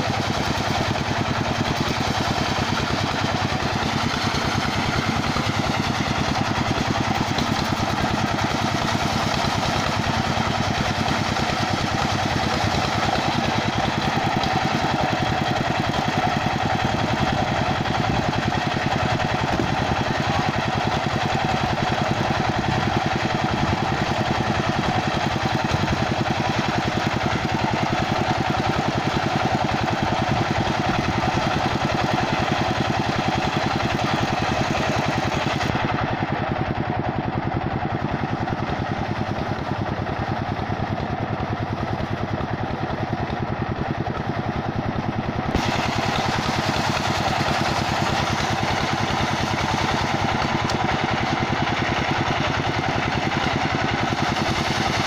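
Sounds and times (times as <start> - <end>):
circular sawmill cutting log: 0.0 - 55.0.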